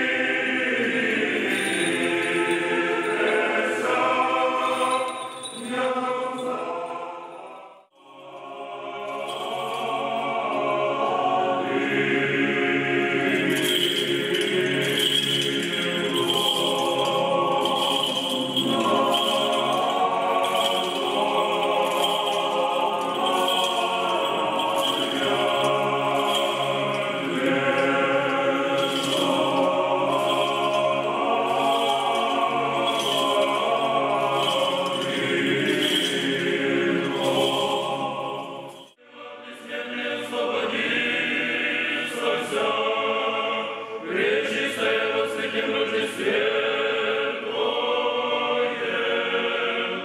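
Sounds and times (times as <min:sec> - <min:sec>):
choir singing a chant: 0:00.0 - 0:50.0
small bells jingling: 0:00.7 - 0:07.6, 0:08.9 - 0:10.8, 0:13.1 - 0:39.0.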